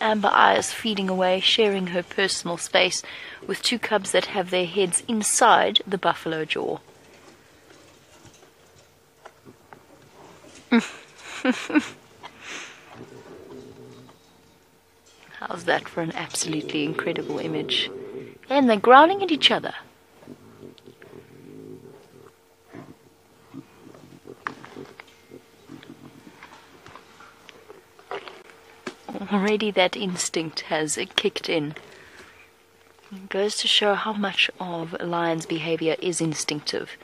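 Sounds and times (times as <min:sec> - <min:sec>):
lions crunching on carcass: 0:06.3 - 0:11.3, 0:12.0 - 0:33.4.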